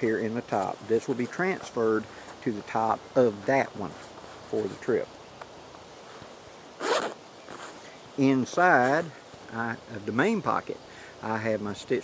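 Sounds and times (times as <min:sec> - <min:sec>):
zipper pulled open: 0:06.8 - 0:07.8.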